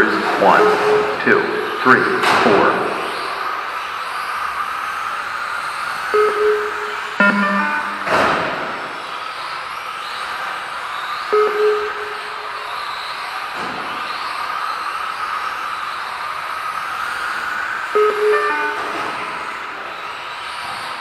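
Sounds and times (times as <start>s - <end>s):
short electronic beeps: 0.5s - 2.0s, 6.2s - 8.5s, 11.3s - 12.6s, 18.0s - 19.3s.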